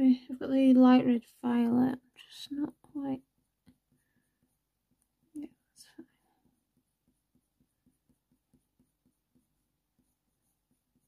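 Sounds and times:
colour pencil scratching on paper: 0.6 - 11.0
soft breathing: 3.8 - 4.7.

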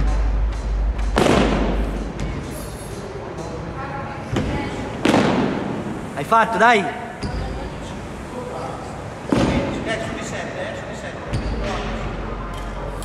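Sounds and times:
heavy thuds in gym hall: 1.0 - 2.5, 4.3 - 6.0, 9.3 - 10.0.

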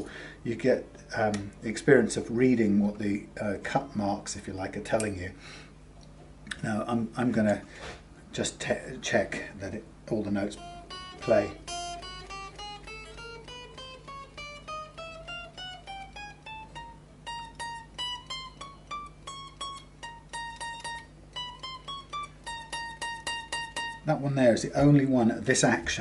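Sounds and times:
electric guitar single notes: 10.4 - 24.1.

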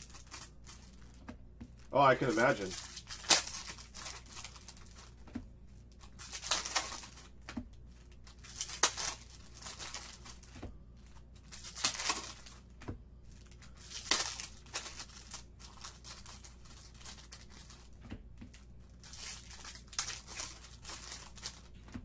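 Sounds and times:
card pack wrappers tearing: 0.0 - 1.2, 1.8 - 5.2, 5.9 - 7.3, 7.9 - 12.6, 13.3 - 18.0, 18.9 - 21.9.

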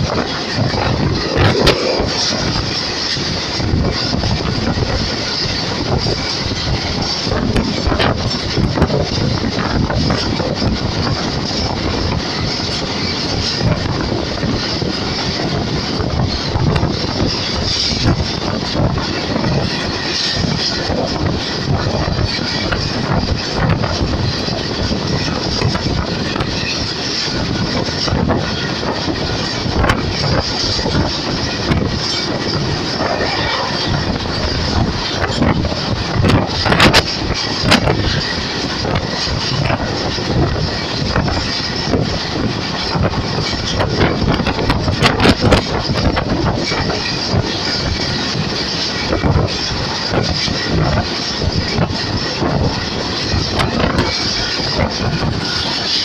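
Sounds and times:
train wheels rumbling on rails: 0.0 - 56.0
wind rushing: 0.0 - 56.0.

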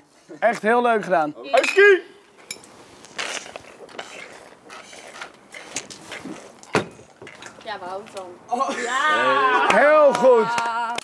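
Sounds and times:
bottle noises: 1.6 - 8.4
people gulping beer: 3.0 - 7.6.

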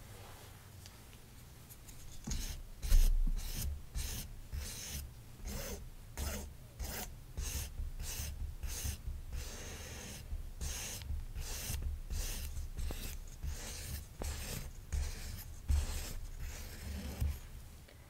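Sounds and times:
toy knife scraping fabric: 1.9 - 17.5.

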